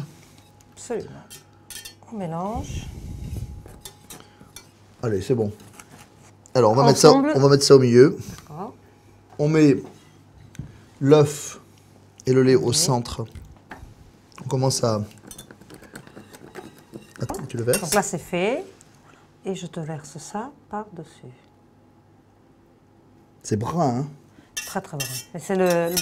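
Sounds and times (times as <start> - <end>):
whisk clinking against metal pan: 15.2 - 18.1, 24.6 - 26.0.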